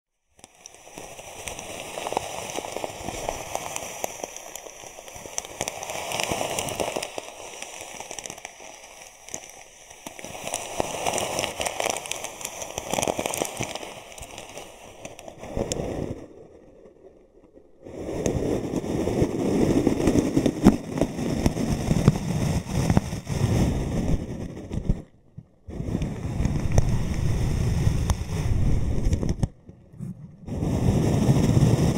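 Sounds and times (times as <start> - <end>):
foam balls crackling in plastic bag: 0.4 - 15.8.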